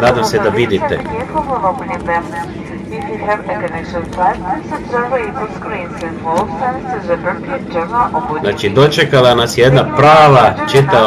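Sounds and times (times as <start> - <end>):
airliner cabin noise: 0.0 - 11.0.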